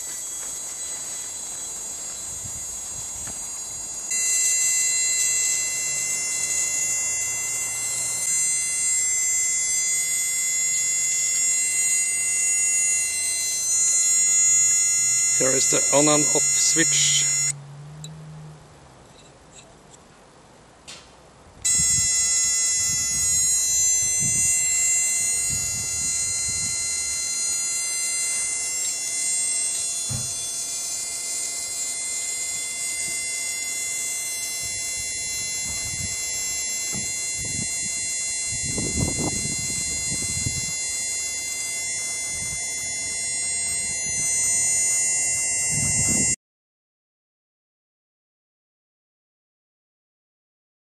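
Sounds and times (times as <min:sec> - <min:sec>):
high buzzing tone: 0:00.0 - 0:19.3, 0:21.6 - 0:46.4.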